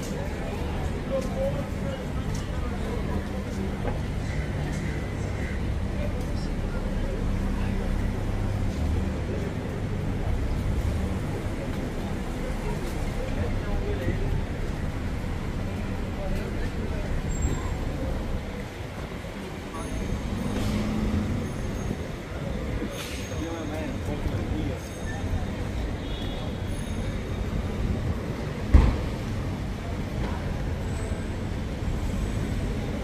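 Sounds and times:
idling and passing car engines: 0:00.0 - 0:26.0, 0:26.6 - 0:33.0
indistinct voices of passersby: 0:00.0 - 0:33.0
traffic rumble: 0:00.0 - 0:33.0.

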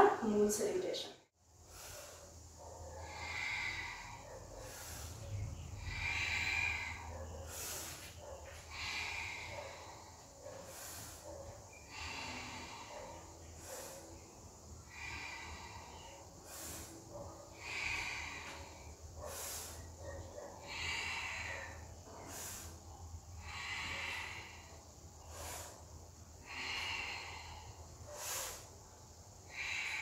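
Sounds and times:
woman breathing through the nose: 0:01.4 - 0:30.0.

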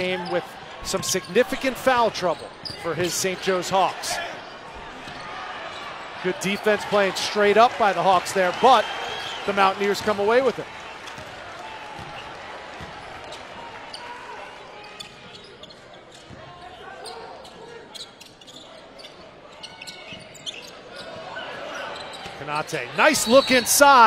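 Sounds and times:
murmur of arena crowd: 0:00.0 - 0:24.0.

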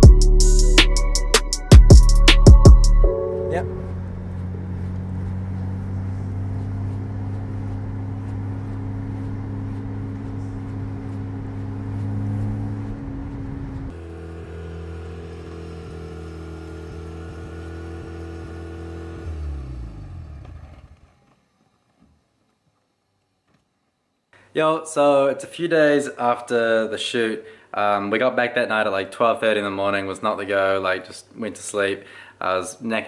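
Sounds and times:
engine winding down: 0:02.6 - 0:22.9
rotary engine running: 0:03.8 - 0:22.2.

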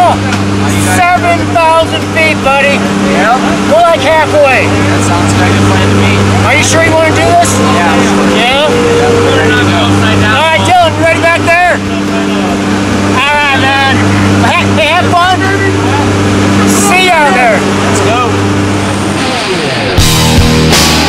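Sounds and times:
plane engines droning in cabin: 0:00.0 - 0:20.3
people shouting: 0:06.5 - 0:11.6.

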